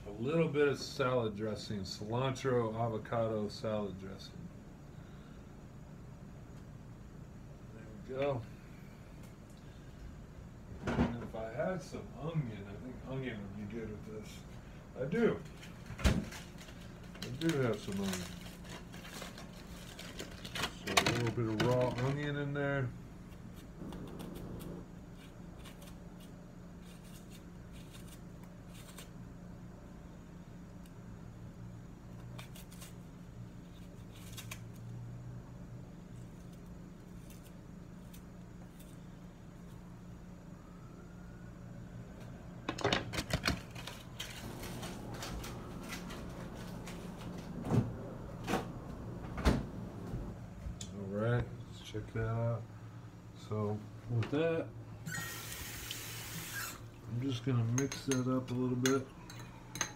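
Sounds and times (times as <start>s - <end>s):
steady low hum: 0.0s - 59.9s
knife cutting onion: 23.3s - 29.2s, 32.2s - 35.0s, 36.3s - 39.0s.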